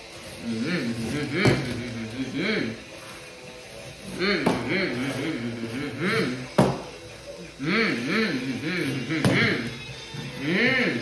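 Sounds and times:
boy humming engine noises: 0.4 - 3.0, 4.0 - 6.6, 7.3 - 11.0.

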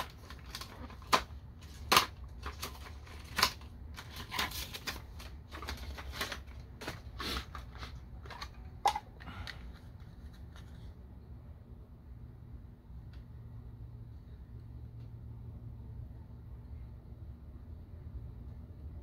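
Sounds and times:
plastic packaging clicking and crackling: 0.0 - 10.9.

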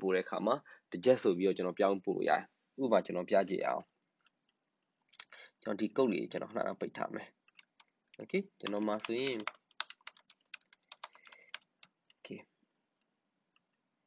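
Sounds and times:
typing on computer keyboard: 8.6 - 12.2.

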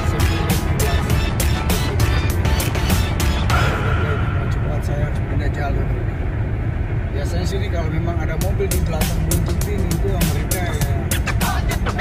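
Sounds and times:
background music with steady beat: 0.0 - 4.7, 8.2 - 12.0.

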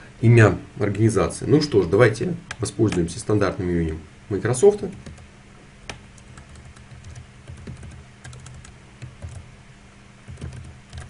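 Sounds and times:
low steady hum: 0.0 - 11.0
keyboard typing: 4.9 - 5.2, 5.9 - 9.4, 10.3 - 11.0.

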